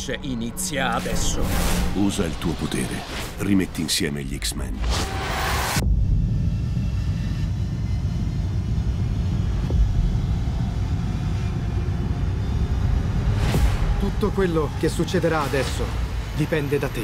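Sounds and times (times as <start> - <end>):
whoosh: 0.8 - 2.4
deep bass rumble of score: 5.8 - 17.0.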